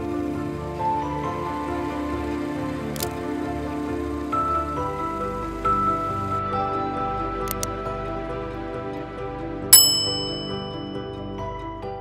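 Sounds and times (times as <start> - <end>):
soft background music: 0.0 - 12.0
bell-like ding: 9.8 - 11.4.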